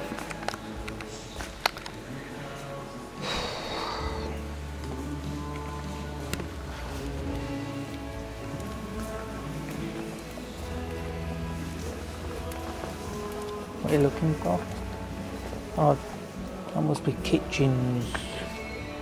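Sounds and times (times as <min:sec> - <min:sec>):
music with held notes: 0:00.0 - 0:19.0.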